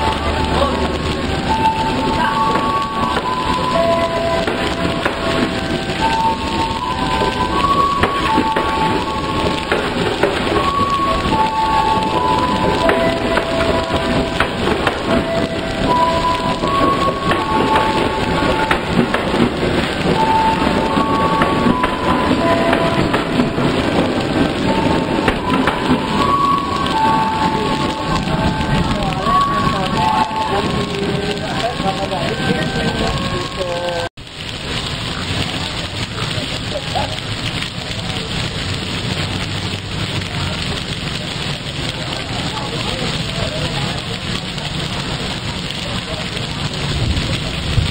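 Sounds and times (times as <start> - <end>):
heavy rain pouring: 0.0 - 47.9
trains passing: 0.0 - 47.9.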